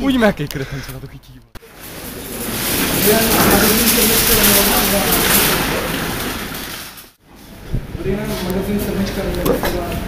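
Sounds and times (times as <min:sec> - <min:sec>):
busy supermarket entrance noise: 0:00.0 - 0:10.0.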